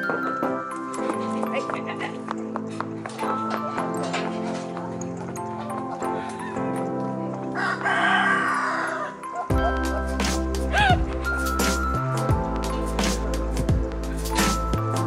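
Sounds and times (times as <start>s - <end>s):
music with held notes: 0.0s - 15.0s
rooster crowing: 7.6s - 9.5s
deep bass: 9.6s - 15.0s.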